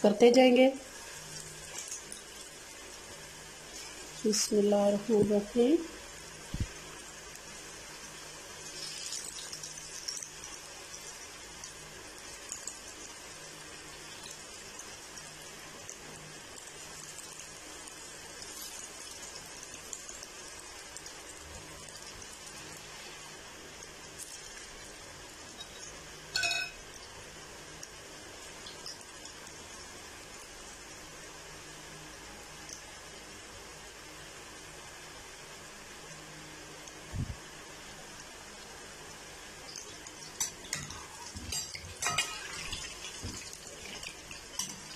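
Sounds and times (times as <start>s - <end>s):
food deep-frying in hot oil: 0.0s - 44.9s.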